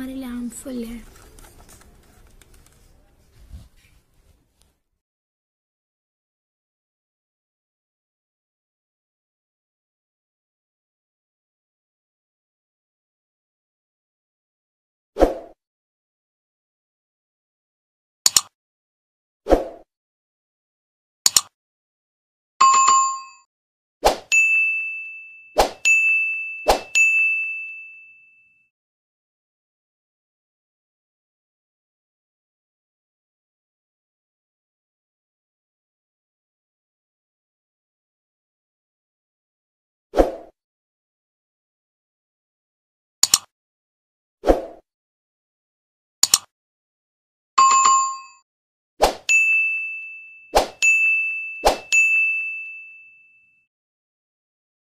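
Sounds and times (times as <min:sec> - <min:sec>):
ringing ding: 0:22.6 - 0:23.4, 0:24.3 - 0:28.7, 0:47.6 - 0:48.4, 0:49.3 - 0:53.6
chime: 0:24.3 - 0:28.7, 0:47.6 - 0:48.4, 0:49.3 - 0:53.6.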